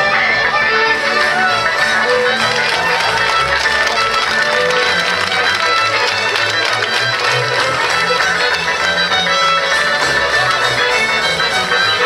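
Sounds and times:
folk dance music with fiddle: 0.0s - 12.0s.

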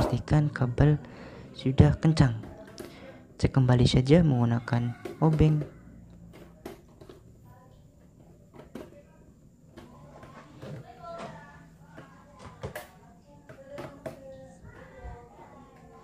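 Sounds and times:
faint background voices: 4.4s - 16.0s.

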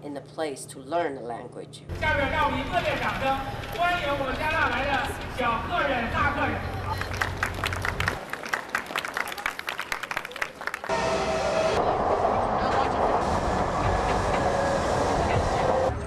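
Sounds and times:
train carriage running noise: 10.9s - 16.0s.

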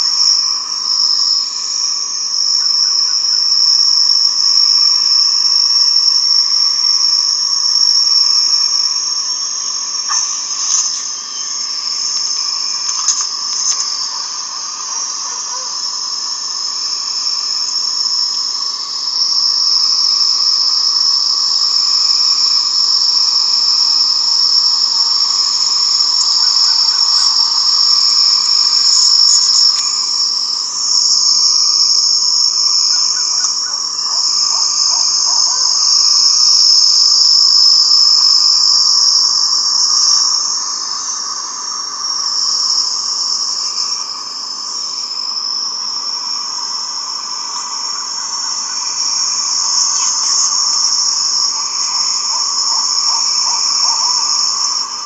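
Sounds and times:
high-pitched insects droning: 0.0s - 55.0s.

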